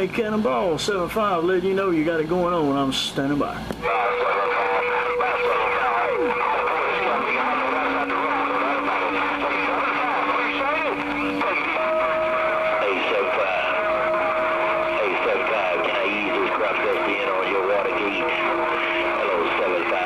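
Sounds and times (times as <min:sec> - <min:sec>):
garbled radio voices: 0:03.7 - 0:20.0
radio static: 0:03.7 - 0:20.0.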